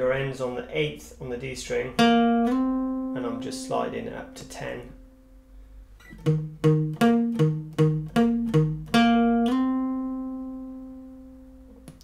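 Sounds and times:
acoustic guitar picked notes: 0:01.8 - 0:12.0
guitar note slide: 0:06.0 - 0:11.5.

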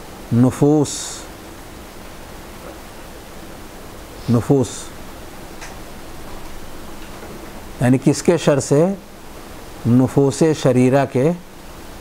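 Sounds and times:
background hiss: 0:00.0 - 0:12.0.

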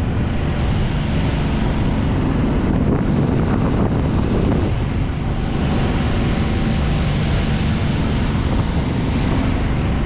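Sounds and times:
fire hose spraying water: 0:00.0 - 0:09.8
fire truck engine and pump: 0:00.0 - 0:10.0
wind buffeting microphone: 0:00.0 - 0:10.0.

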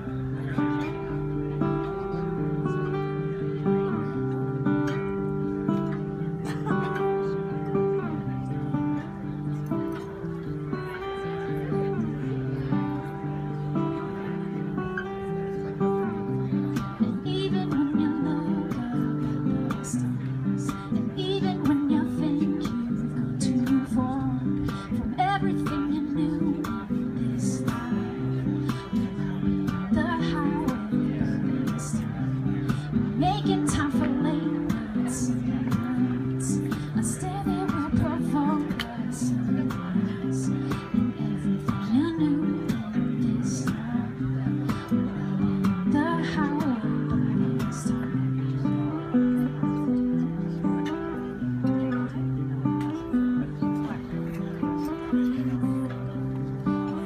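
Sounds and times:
acoustic guitar playing: 0:00.0 - 0:57.0.

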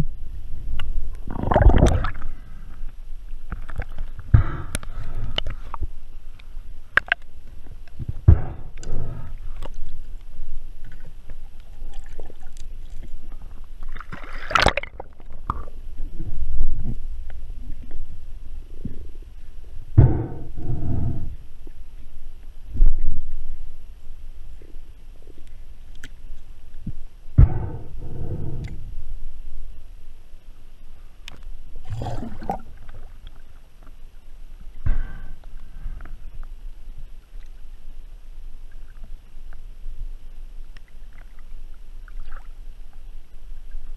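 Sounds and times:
water sloshing and lapping: 0:01.2 - 0:02.7, 0:10.8 - 0:17.0, 0:31.8 - 0:34.0, 0:40.8 - 0:42.6
underwater rush of water: 0:01.2 - 0:05.8, 0:08.1 - 0:15.8, 0:31.8 - 0:33.8.

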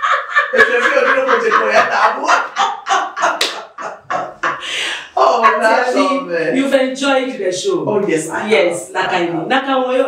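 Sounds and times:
women laughing: 0:00.0 - 0:06.2
hand claps: 0:03.3 - 0:03.7.

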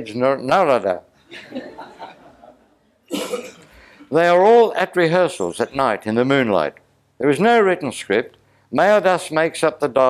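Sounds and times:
man coughing: 0:03.0 - 0:04.1
soft breathing: 0:03.6 - 0:04.1.

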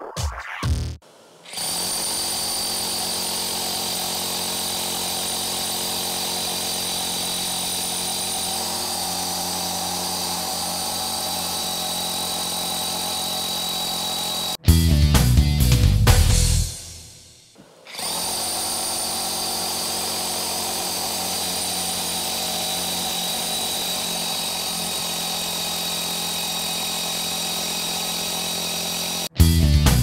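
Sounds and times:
rotary hammer drilling: 0:01.0 - 0:14.6, 0:17.5 - 0:29.4.

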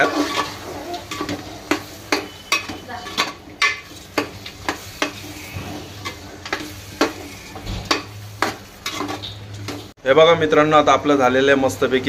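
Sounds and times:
metal ladle scraping pot: 0:00.0 - 0:09.9
masala sizzling: 0:00.0 - 0:12.0.

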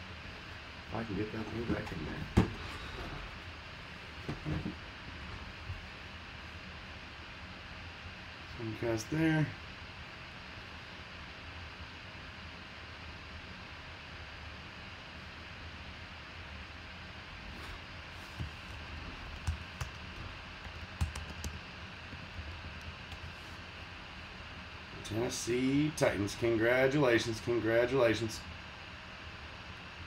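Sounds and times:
steady low hiss: 0:00.0 - 0:11.1, 0:16.1 - 0:30.0
keyboard typing and clicking: 0:19.4 - 0:21.6.

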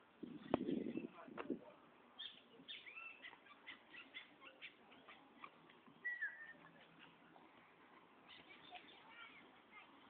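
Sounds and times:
small birds chirping: 0:00.2 - 0:01.3, 0:02.0 - 0:10.0.

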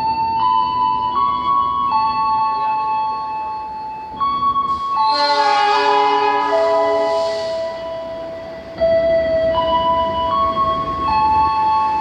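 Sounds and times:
slow electronic melody: 0:00.0 - 0:12.0.

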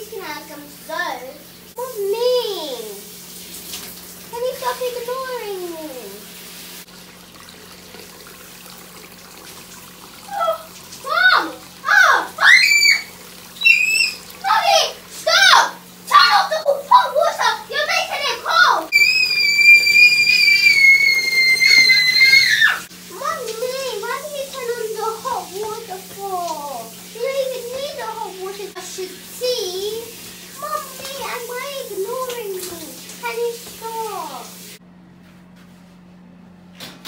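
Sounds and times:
water running from shower: 0:00.0 - 0:34.8
girl screaming shrilly: 0:10.3 - 0:17.4, 0:18.4 - 0:22.9
child calling out: 0:10.3 - 0:23.5.

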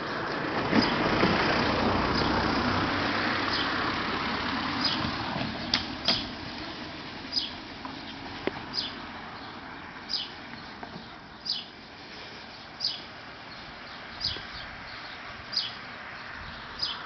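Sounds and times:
small birds chirping: 0:00.0 - 0:02.6, 0:03.2 - 0:04.0, 0:04.7 - 0:17.0
car driving past: 0:00.0 - 0:10.2.

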